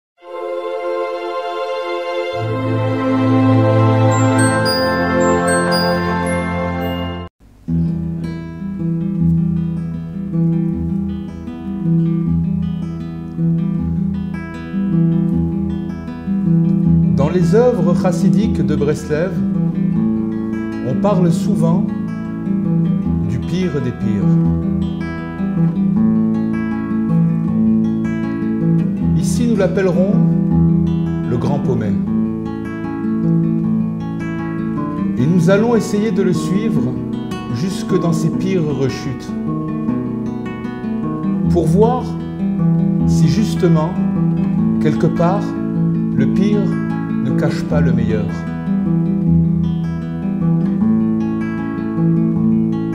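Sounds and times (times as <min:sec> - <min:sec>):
acoustic guitar plucked chords: 0:02.4 - 0:18.4, 0:19.4 - 0:47.3.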